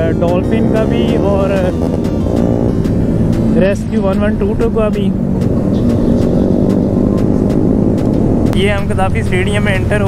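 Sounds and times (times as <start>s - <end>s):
motorcycle engine cruising: 0.0s - 10.0s.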